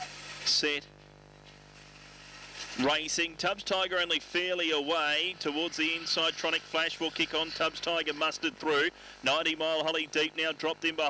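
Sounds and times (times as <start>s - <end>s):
faint background hum: 0.0s - 11.0s
man announcing: 0.5s - 0.9s, 2.8s - 11.0s.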